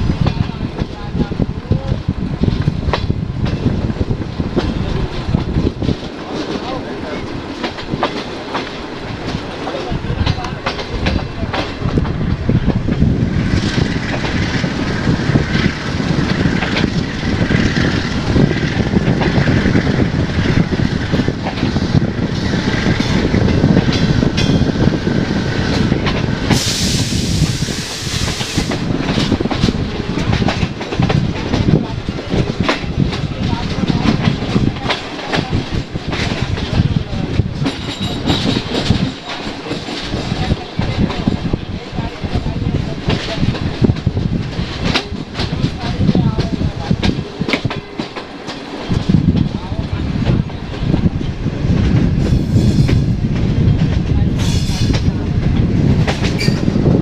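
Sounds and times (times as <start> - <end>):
train wheels clattering over rail joints: 0.0 - 57.0
loud hiss: 26.4 - 28.8.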